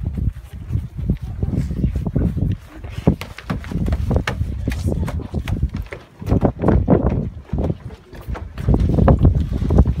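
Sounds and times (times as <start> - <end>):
footsteps on wooden stairs: 1.8 - 9.4.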